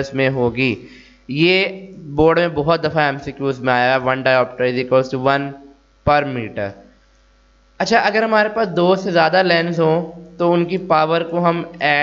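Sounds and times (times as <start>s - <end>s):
man speaking: 0.0s - 6.8s, 7.8s - 12.0s
faint electrical mains hum: 0.0s - 12.0s.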